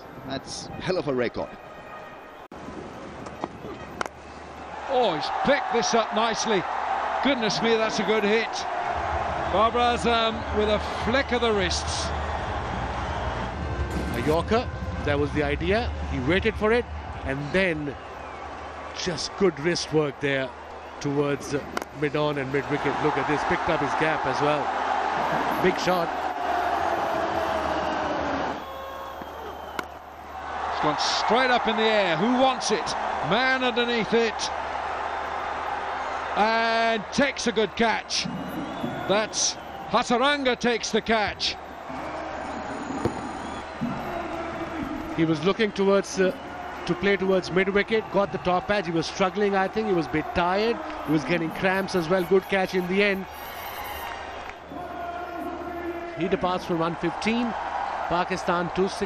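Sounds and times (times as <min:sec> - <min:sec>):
crowd cheering: 0:03.7 - 0:59.0.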